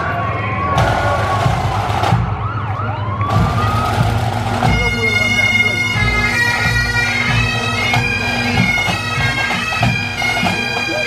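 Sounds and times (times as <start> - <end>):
drumming: 0.8 - 11.0
bagpipes sliding up in pitch: 3.3 - 11.0.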